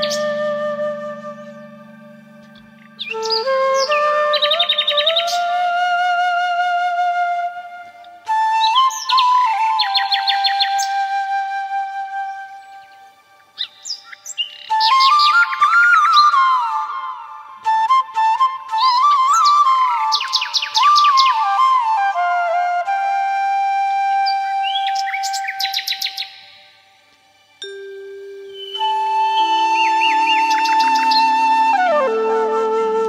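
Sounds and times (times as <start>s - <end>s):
bird chirps: 0.0s - 0.4s, 1.2s - 5.5s, 12.6s - 16.5s, 19.2s - 21.6s, 24.2s - 26.8s, 27.6s - 31.7s
calm flute-like background music: 0.0s - 33.0s.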